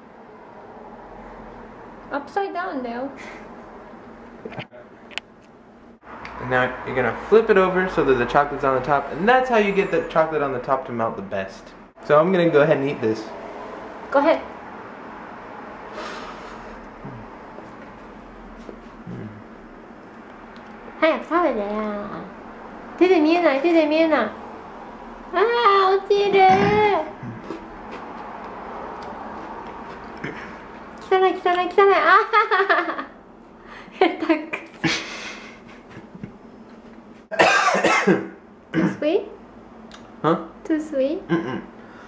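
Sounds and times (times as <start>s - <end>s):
steady background hum: 0.0s - 42.0s
person humming mm: 17.0s - 17.3s, 19.0s - 19.5s
person chewing: 28.9s - 31.1s.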